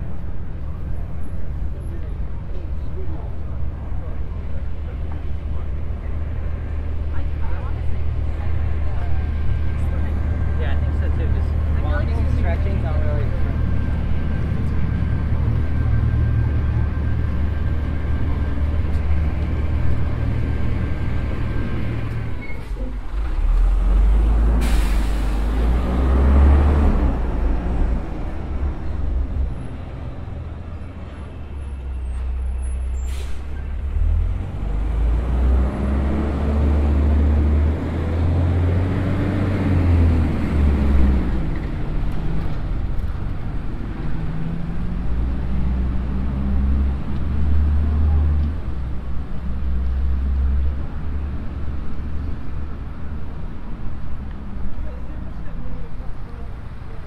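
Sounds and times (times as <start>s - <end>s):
traffic rumble: 0.0s - 57.0s
vehicle engine passing: 6.9s - 31.0s, 33.8s - 52.7s.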